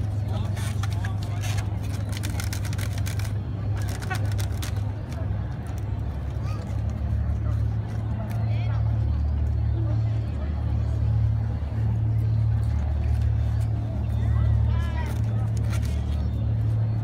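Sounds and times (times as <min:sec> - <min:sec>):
faint voices of onlookers: 0:00.0 - 0:17.0.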